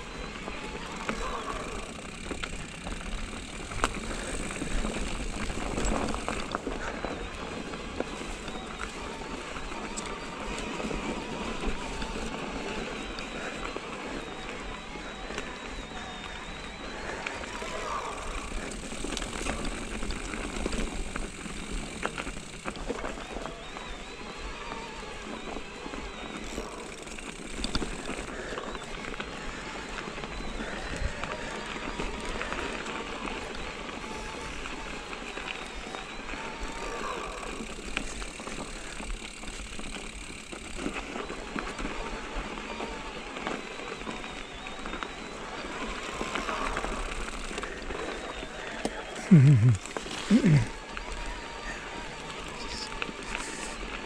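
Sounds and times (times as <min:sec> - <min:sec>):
bike tyre noise on dirt: 0:00.0 - 0:54.0
bike rattling clicks and knocks: 0:00.4 - 0:14.7, 0:17.1 - 0:24.4, 0:25.0 - 0:30.7, 0:31.3 - 0:48.2.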